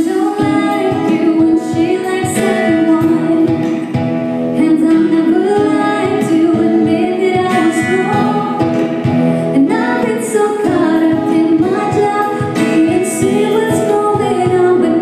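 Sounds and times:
keyboard: 0.0s - 15.0s
strummed acoustic guitar: 0.0s - 15.0s
woman singing pop song: 0.0s - 15.0s.

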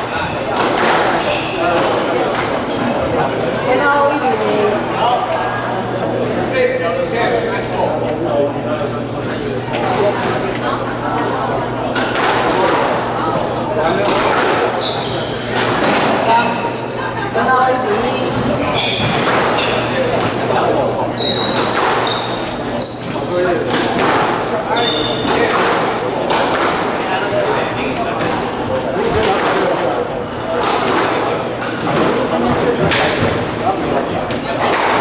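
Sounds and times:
sneakers squeaking on wooden floor: 0.0s - 2.1s, 14.6s - 16.8s, 18.2s - 20.4s, 21.1s - 23.5s, 24.7s - 25.4s
murmur of voices: 0.0s - 35.0s
squash ball hitting rackets and walls: 0.2s - 2.7s, 11.9s - 16.5s, 18.3s - 20.4s, 21.2s - 35.0s.

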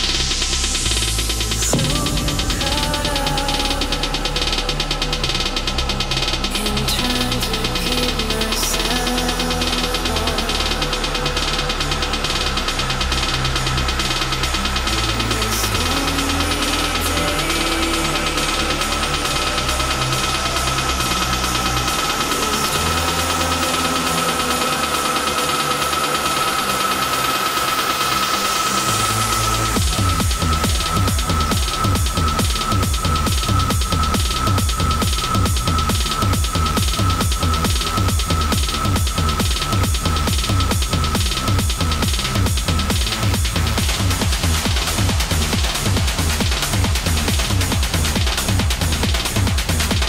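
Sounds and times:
electronic dance music: 0.0s - 50.0s.

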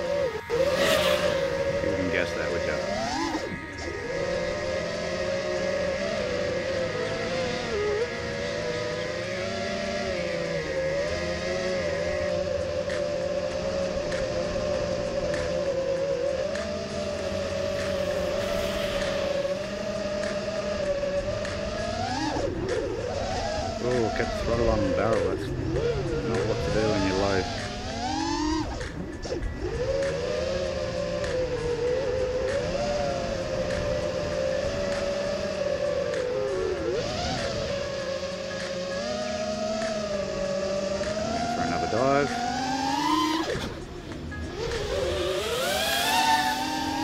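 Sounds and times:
quadcopter propellers whining: 0.0s - 47.0s.

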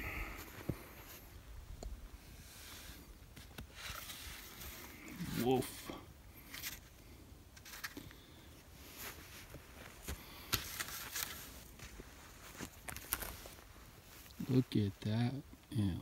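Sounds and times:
footsteps on dry grass: 8.9s - 14.6s
faint crackles and clicks: 9.5s - 14.4s.

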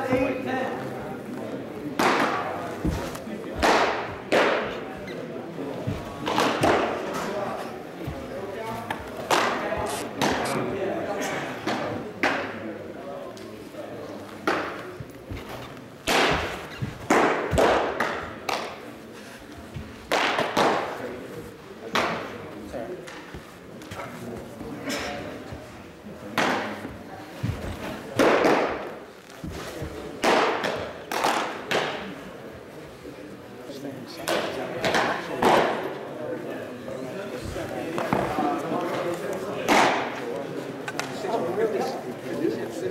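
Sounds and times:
murmur of voices: 0.0s - 42.9s
baseballs smacking into gloves: 1.9s - 4.8s, 5.9s - 7.3s, 14.4s - 18.8s, 20.0s - 21.0s, 27.5s - 32.1s.

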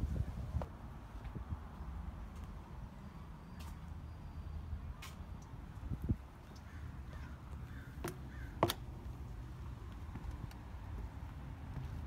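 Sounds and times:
crow cawing: 6.6s - 8.6s.

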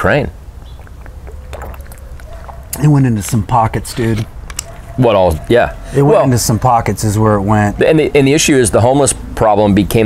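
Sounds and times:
outdoor background noise: 0.0s - 10.0s
sips and swallows: 0.6s - 2.9s
man speaking: 5.0s - 10.0s.

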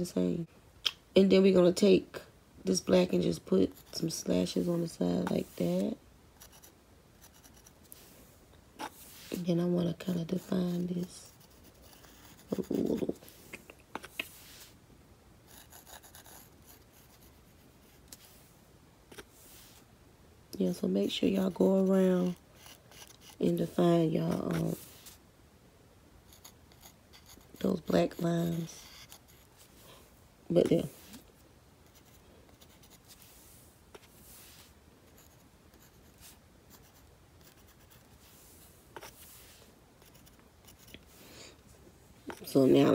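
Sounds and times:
paintbrush rubbing strokes: 7.4s - 14.8s, 19.2s - 19.9s, 22.6s - 25.2s, 30.7s - 31.3s, 31.9s - 36.9s, 37.7s - 41.2s
paintbrush scratching on wood: 21.5s - 25.2s.

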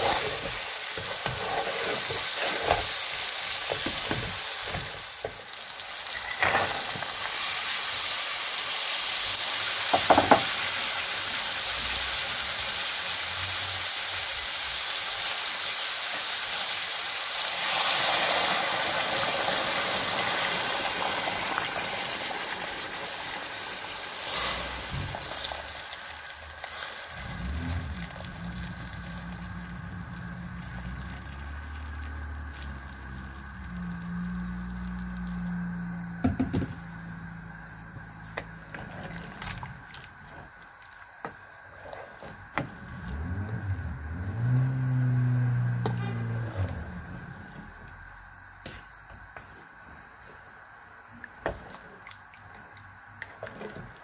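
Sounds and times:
food sizzling in hot oil: 0.0s - 46.4s
water poured into pot: 17.6s - 33.4s, 38.8s - 43.3s
low steady hum: 27.2s - 40.4s.

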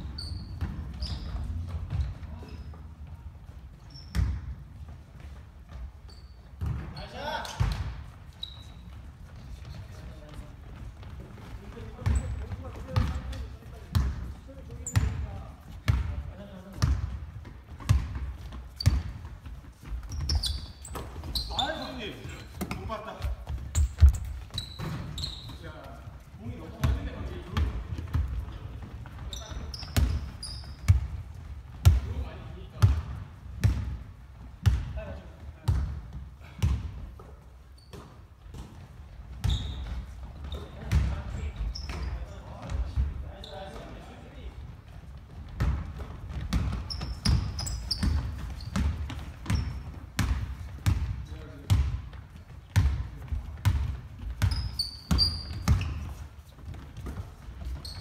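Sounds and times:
basketball bouncing on hardwood: 45.3s - 52.1s, 52.7s - 57.8s.

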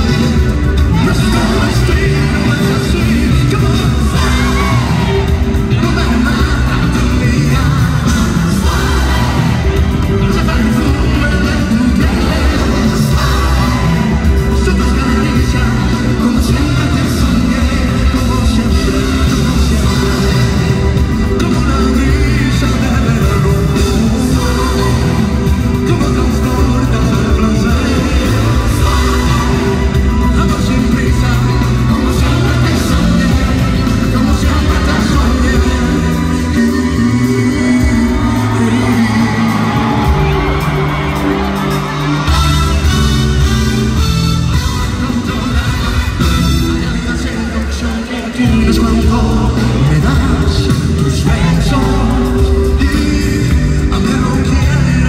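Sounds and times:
fans whooping and cheering: 0.0s - 55.0s
live pop band music: 0.0s - 55.0s
man singing: 0.0s - 55.0s.

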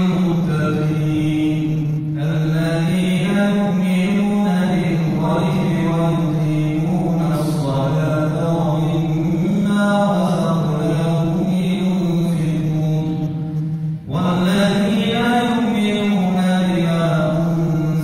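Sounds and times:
man chanting religious recitation: 0.0s - 18.0s.

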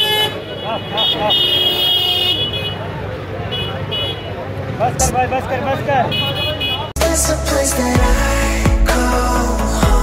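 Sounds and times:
traffic noise: 0.0s - 7.3s.

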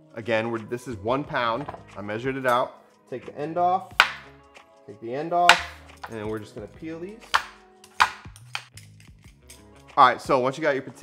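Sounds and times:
background music with low notes: 0.0s - 11.0s
knife peeling potato: 7.2s - 9.6s.

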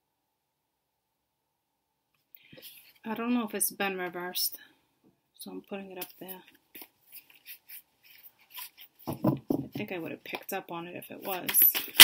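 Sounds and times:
cards brushing and sliding: 6.2s - 9.3s.

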